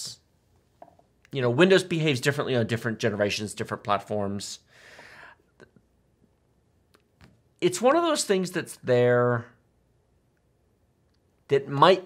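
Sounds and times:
brief breath: 4.7s - 5.5s.

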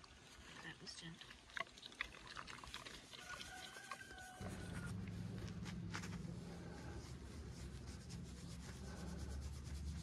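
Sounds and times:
hand rubbing bristly coat: 4.2s - 10.0s.

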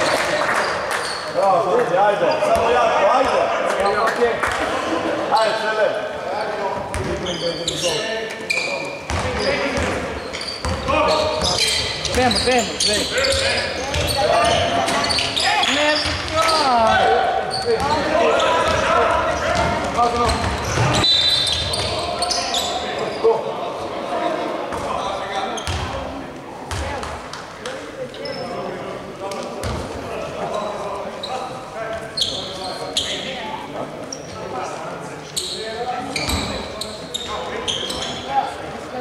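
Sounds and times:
basketball bouncing on wooden court: 13.8s - 14.6s, 25.6s - 26.0s, 26.7s - 27.2s.

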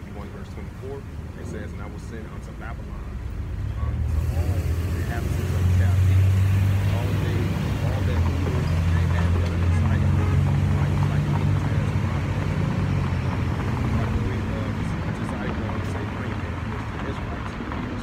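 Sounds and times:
truck engine pulling away: 3.7s - 18.0s.

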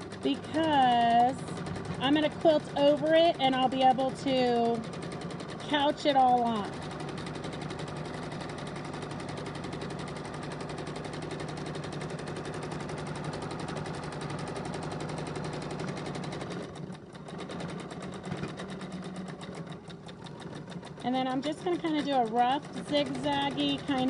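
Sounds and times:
sewing machine stitching: 0.0s - 24.0s.

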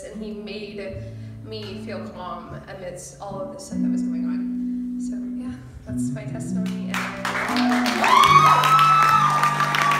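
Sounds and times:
audience clapping: 6.7s - 9.9s
audience cheering: 7.4s - 9.9s.

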